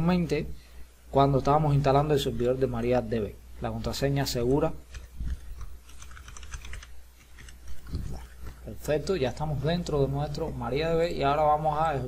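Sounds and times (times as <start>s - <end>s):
computer keyboard typing: 4.9s - 8.2s.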